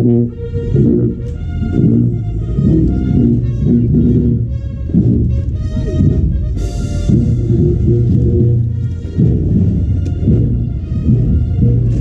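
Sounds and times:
low brass line: 0.0 - 12.0
marching brass band playing: 0.0 - 12.0.

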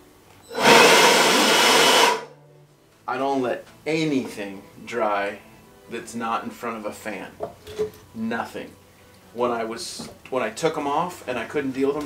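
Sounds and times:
electric blower blast of air: 0.5 - 2.3.

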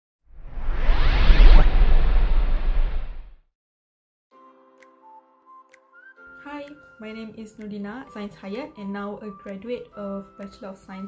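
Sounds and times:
deep rumble: 0.4 - 3.4
whoosh sound effect: 0.4 - 3.4.

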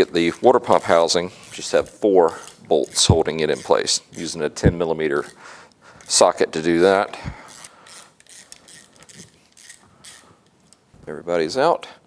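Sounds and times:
socket ratchet clicking: 0.7 - 4.3, 7.5 - 10.8.

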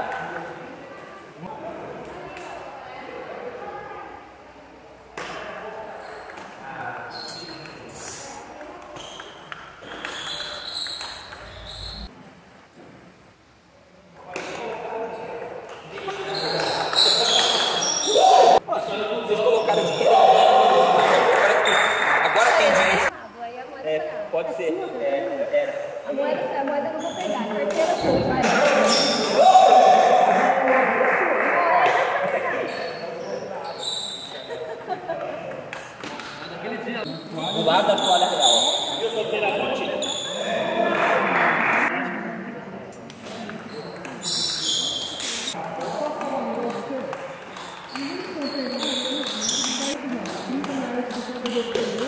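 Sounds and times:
voices in a large hall: 0.0 - 52.0
table tennis ball bouncing: 8.6 - 11.7, 43.4 - 52.0.

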